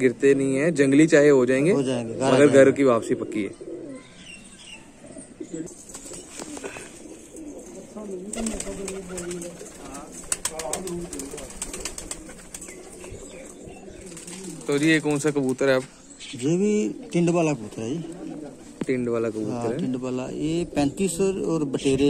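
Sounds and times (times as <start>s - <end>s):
pigeons cooing: 1.6s - 22.0s
wing flaps: 8.3s - 12.9s.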